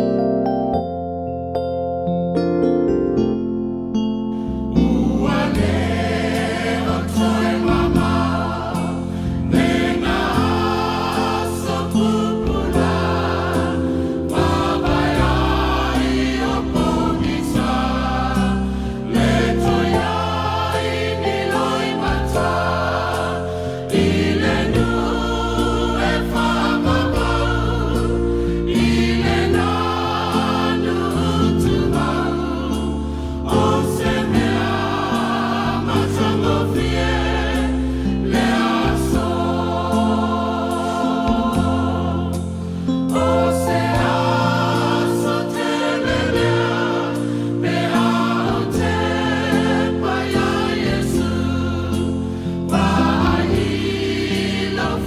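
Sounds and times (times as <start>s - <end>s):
choir singing a hymn: 4.7s - 55.0s.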